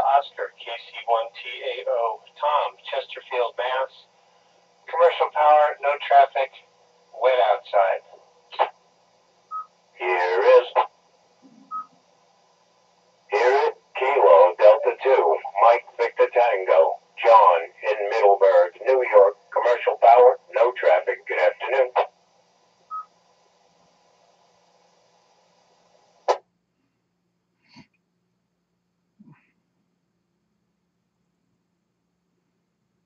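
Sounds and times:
voice over radio speaker: 0.0 - 4.1, 4.9 - 6.6, 7.2 - 8.7, 10.0 - 10.9, 13.3 - 22.1
steady hum: 0.0 - 33.0.

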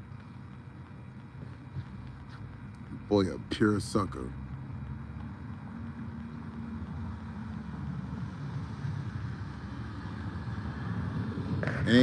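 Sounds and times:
motor vehicle rumble: 0.0 - 12.0.

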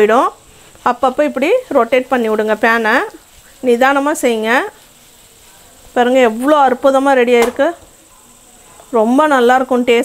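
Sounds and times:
potatoes sizzling in pan: 0.0 - 10.0.

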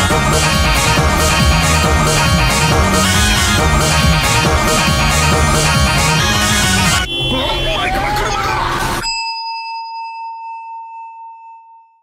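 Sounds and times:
altar bell ringing: 9.0 - 12.0.

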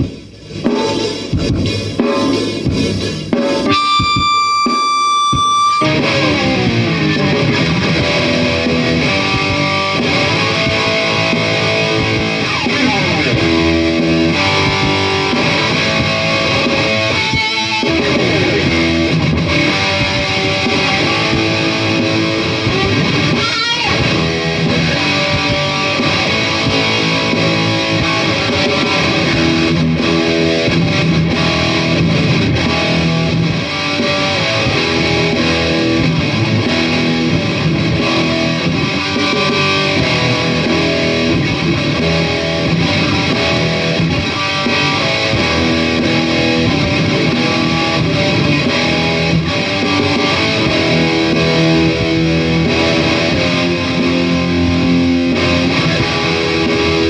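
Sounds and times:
distorted electric guitar riffs: 0.0 - 57.0
rock drum loop: 0.0 - 57.0
guitar sweeping slides: 2.0 - 57.0.

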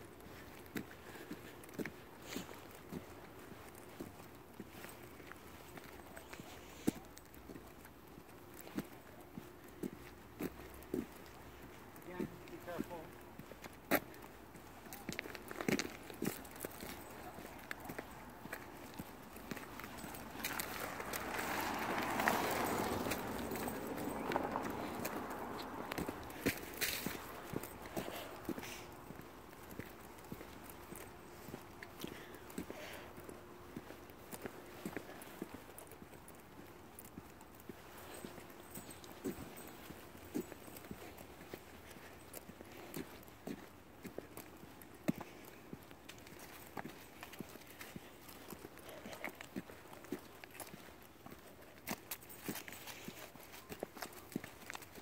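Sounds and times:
footsteps on asphalt: 0.0 - 55.0.

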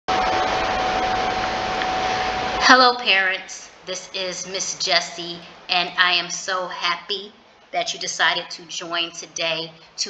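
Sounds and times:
loud rushing noise: 0.1 - 2.7
faint constant tone: 0.1 - 10.0.

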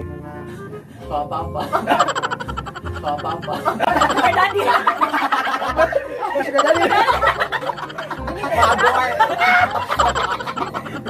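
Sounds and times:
young people laughing: 1.6 - 11.0.

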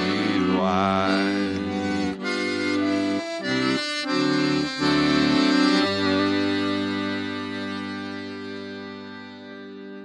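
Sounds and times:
voice holding wavering note: 0.0 - 3.0
accordion chords: 0.0 - 10.0.

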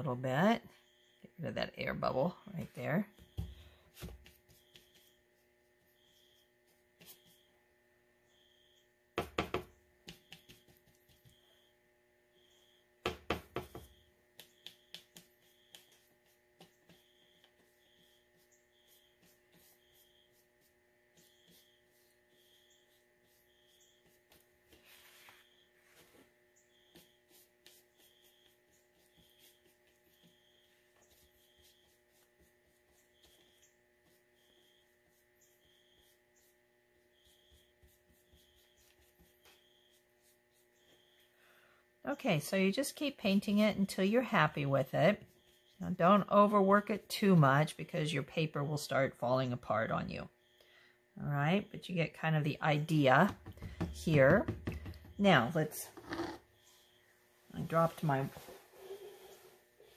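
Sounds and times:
brush ticking in palette: 13.6 - 24.6.

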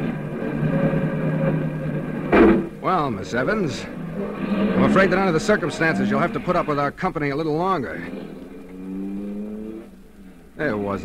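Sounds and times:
car engine accelerating away: 0.0 - 11.0.

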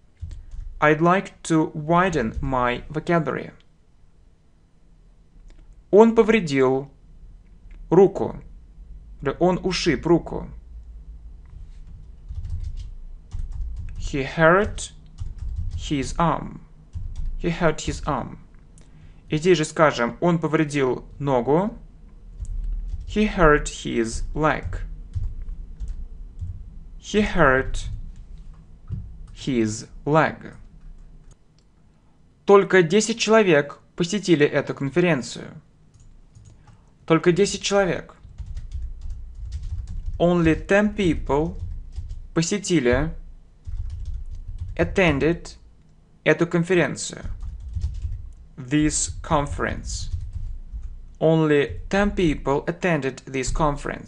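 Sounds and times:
typing on computer keyboard: 0.2 - 0.8, 11.9 - 15.9, 16.9 - 17.4, 22.4 - 23.3, 24.6 - 26.6, 35.9 - 36.8, 38.2 - 42.2, 43.6 - 45.3, 47.2 - 48.4, 49.1 - 51.0.

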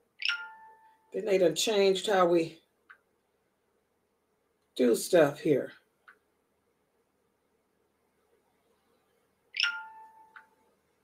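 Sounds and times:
electronic notification chime: 9.6 - 10.4.

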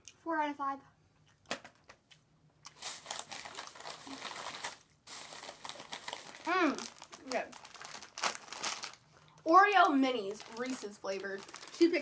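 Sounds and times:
plastic packaging crinkling: 2.7 - 12.0.

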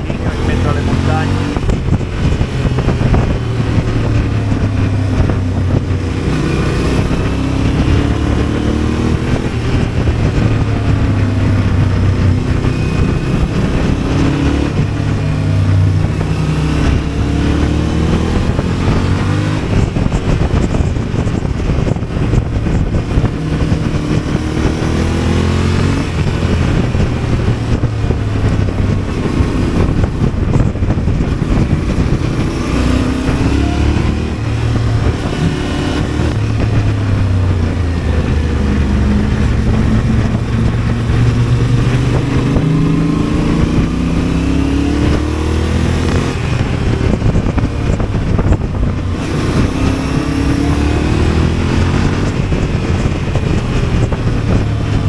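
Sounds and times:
motorcycle engine revving: 0.0 - 55.0
wind noise: 0.0 - 55.0.

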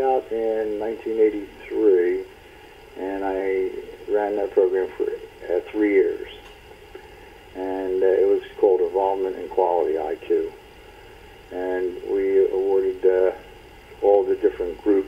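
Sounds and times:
man talking: 0.0 - 2.3, 3.0 - 6.5, 7.6 - 10.6, 11.5 - 13.4, 14.0 - 15.0.

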